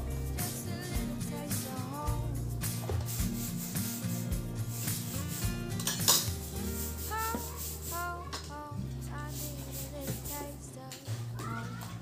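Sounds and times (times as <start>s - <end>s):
pop music with singing: 0.0s - 3.6s, 4.2s - 12.0s
spoon scraping a pan: 5.2s - 8.5s
kitchen handling noise: 5.8s - 6.5s.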